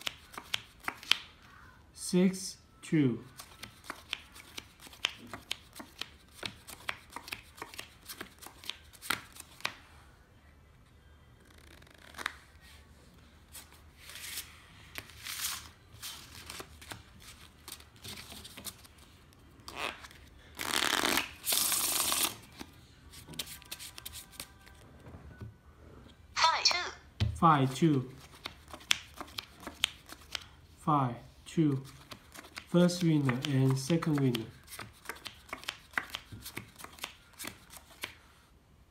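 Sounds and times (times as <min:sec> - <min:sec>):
cards flicking and clicking: 0:00.0 - 0:01.3, 0:03.4 - 0:09.8, 0:28.2 - 0:30.5, 0:32.0 - 0:38.2
riffle shuffle of cards: 0:20.6 - 0:24.8.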